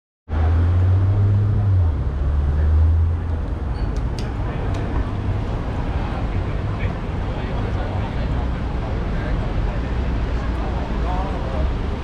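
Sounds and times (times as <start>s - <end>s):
city street traffic: 0.3s - 12.0s
vehicle engine droning: 0.3s - 12.0s.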